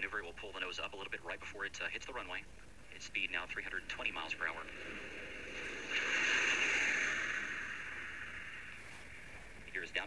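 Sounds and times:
rushing whoosh of air: 4.6 - 9.6.

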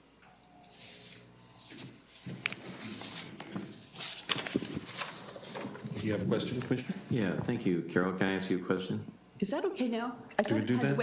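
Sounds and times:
paper rustling: 1.7 - 7.5.

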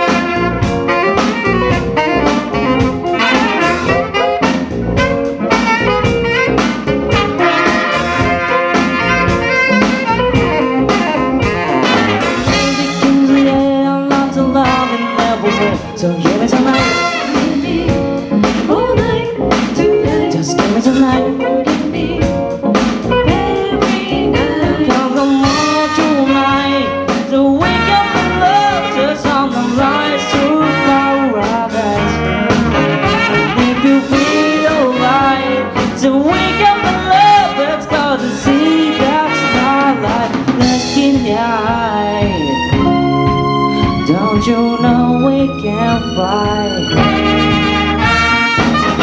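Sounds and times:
horn section: 0.0 - 18.4, 25.4 - 41.0, 46.9 - 49.0
drum kit: 0.0 - 49.0
electric bass: 0.0 - 49.0
keyboard: 0.0 - 49.0.

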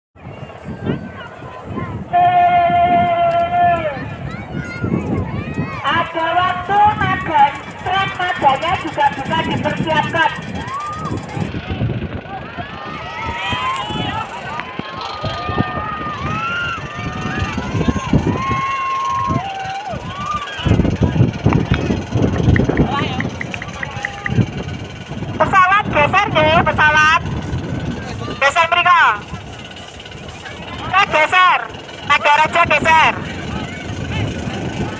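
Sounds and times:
low rumbling background noise: 0.2 - 34.9
people shouting and calling out: 0.3 - 34.9.

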